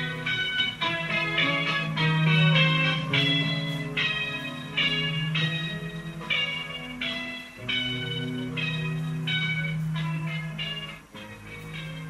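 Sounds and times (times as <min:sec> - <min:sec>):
bell-like tones ringing: 0:00.0 - 0:12.0.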